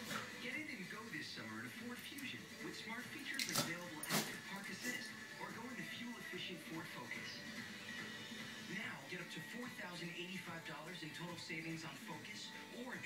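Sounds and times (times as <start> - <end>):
voice talking on television: 0.0 - 7.6, 8.6 - 13.0
television music: 0.0 - 13.0.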